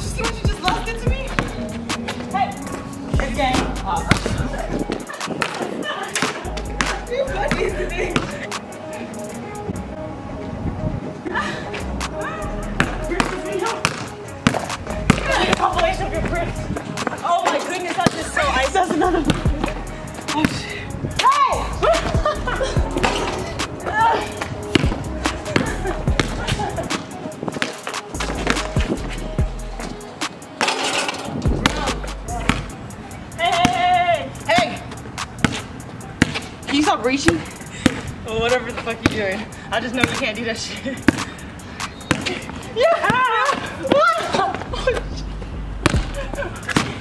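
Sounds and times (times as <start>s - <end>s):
music with deep bass line: 0.0s - 5.1s, 6.5s - 8.6s, 11.8s - 13.7s, 14.4s - 17.1s, 18.2s - 27.0s, 28.1s - 30.2s, 31.3s - 33.0s, 44.7s - 47.0s
basketball bouncing on concrete: 0.1s - 8.4s, 12.8s - 21.3s, 24.7s - 26.7s, 31.5s - 32.8s, 33.5s - 33.9s, 34.5s - 40.4s, 41.0s - 41.3s, 42.0s - 45.0s, 45.8s - 47.0s.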